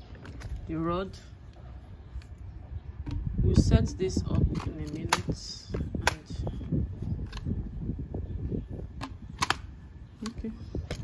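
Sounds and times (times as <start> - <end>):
mop handle clicks and knocks: 3.0 - 6.4.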